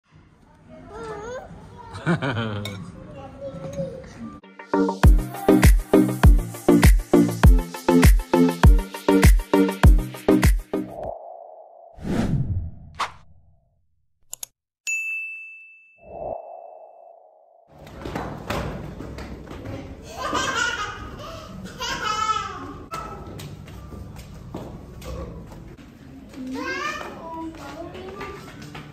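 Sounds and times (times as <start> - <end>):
child's high voice: 0.7 - 2.0, 3.1 - 4.2, 26.4 - 28.4
bright bell-like ding: 14.9 - 16.0.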